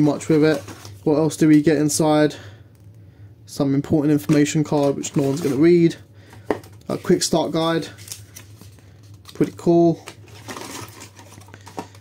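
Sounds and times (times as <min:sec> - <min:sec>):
packaging rustling: 0:00.0 - 0:01.7, 0:04.1 - 0:12.0
steady low hum: 0:00.0 - 0:12.0.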